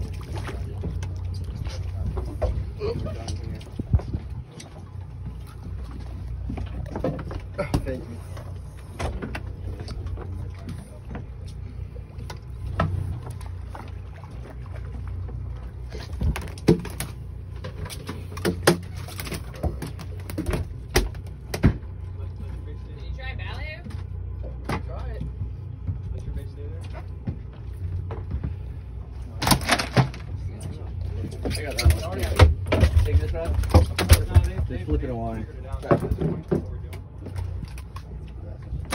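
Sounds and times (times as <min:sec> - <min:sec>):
steady low hum: 0:00.0 - 0:38.9
fish slapping on boat deck: 0:12.2 - 0:22.0, 0:29.3 - 0:35.0.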